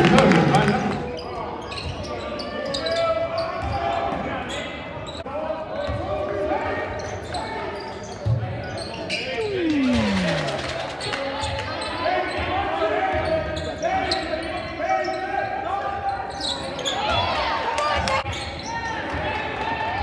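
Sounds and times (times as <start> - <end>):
people shouting and chattering: 5.2 - 20.0
long sound sliding down in pitch: 9.3 - 11.0.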